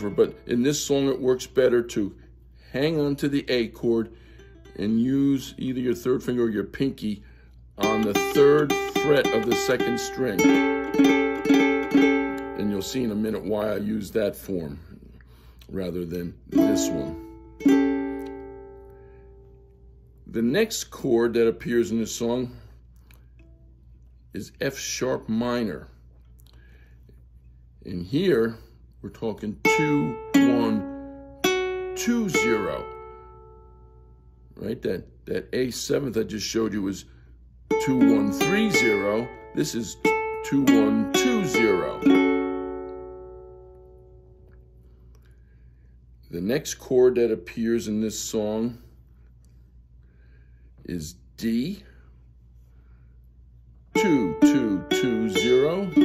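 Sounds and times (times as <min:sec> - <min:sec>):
ukulele chord strummed: 0:04.2 - 0:06.3, 0:07.8 - 0:13.3, 0:16.5 - 0:19.7, 0:29.6 - 0:33.8, 0:37.7 - 0:44.5, 0:54.0 - 0:56.0.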